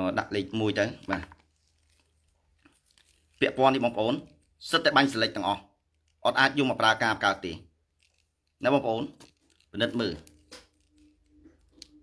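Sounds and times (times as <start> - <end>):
man speaking: 0.0 - 1.4, 3.4 - 7.7, 8.6 - 10.3
soft cord handling sounds: 0.3 - 12.0.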